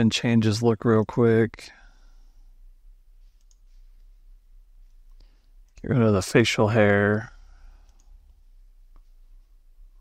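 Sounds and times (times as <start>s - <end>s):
faint computer mouse clicks: 3.3s - 3.7s, 7.8s - 9.1s.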